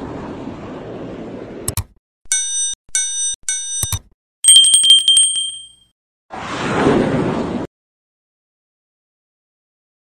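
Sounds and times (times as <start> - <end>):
fast trill of bell strikes: 4.5 - 5.8.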